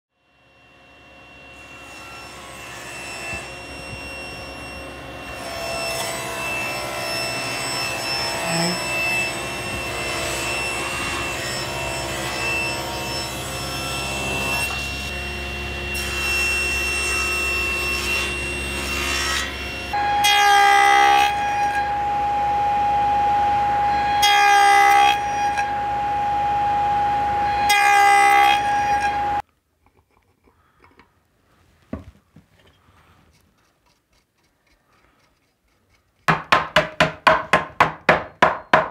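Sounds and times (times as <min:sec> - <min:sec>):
table saw whining: 0:00.2 - 0:29.4
saw cutting wood: 0:00.3 - 0:29.4, 0:33.3 - 0:38.9.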